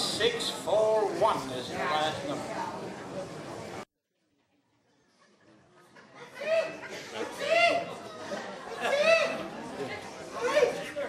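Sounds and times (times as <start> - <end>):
voices chattering: 5.9 - 11.0.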